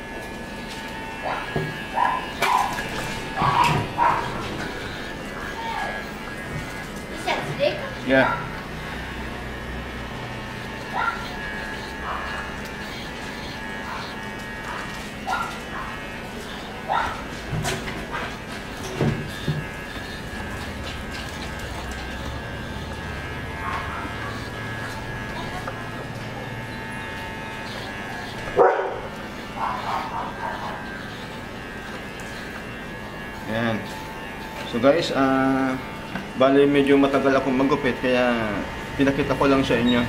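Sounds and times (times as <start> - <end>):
electric hair clipper buzzing: 0.0 - 40.0.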